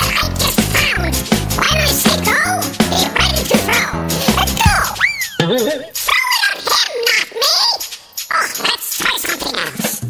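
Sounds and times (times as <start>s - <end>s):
pitched-up squeaky voices: 0.0s - 10.0s.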